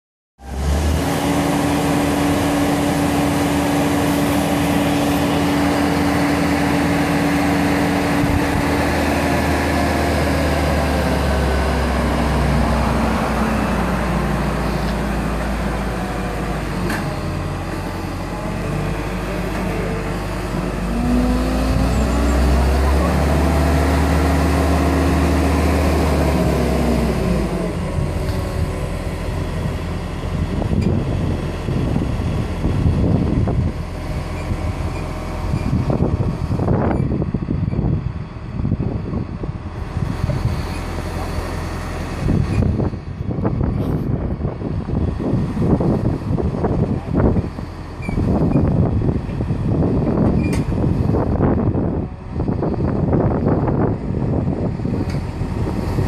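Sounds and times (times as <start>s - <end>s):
diesel engine running: 0.4s - 56.0s.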